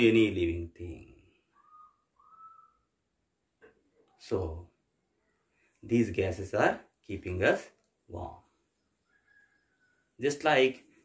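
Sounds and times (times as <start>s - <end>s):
faint whistle-like tone: 1.5s - 3.0s.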